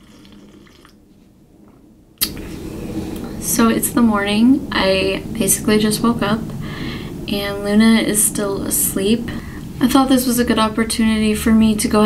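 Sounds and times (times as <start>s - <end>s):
sipping and slurping coffee: 0.0s - 1.0s.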